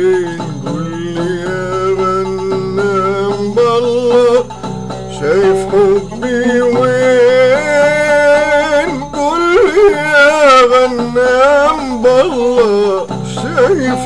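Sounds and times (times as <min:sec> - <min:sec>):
oud melody: 0:00.0 - 0:14.0
steady lower accompaniment: 0:00.0 - 0:14.0.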